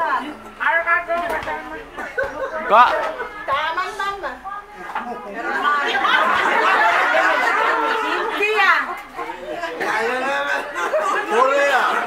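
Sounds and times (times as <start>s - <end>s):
people talking at once: 0.0s - 12.0s.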